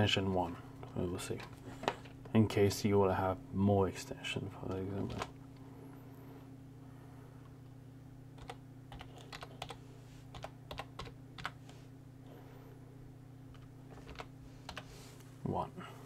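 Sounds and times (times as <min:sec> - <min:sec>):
steady low hum: 0:00.0 - 0:16.0
typing on computer keyboard: 0:08.4 - 0:11.6, 0:13.9 - 0:14.9.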